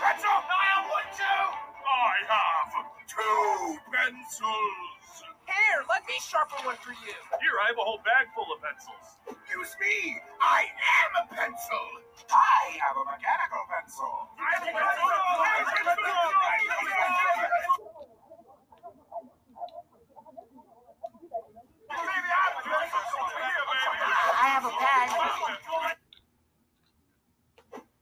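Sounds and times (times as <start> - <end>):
cartoon voices shouting: 14.4 - 17.8, 21.9 - 26.0.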